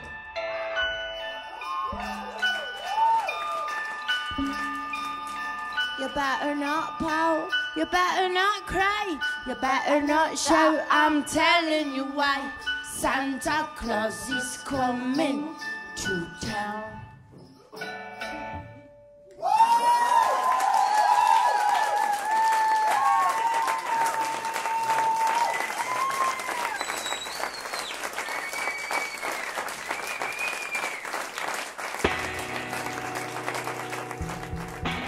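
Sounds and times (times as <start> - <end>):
audience applauding and cheering: 1.2 - 5.8, 19.3 - 35.0
bass guitar: 32.0 - 35.0
electric guitar: 32.0 - 35.0.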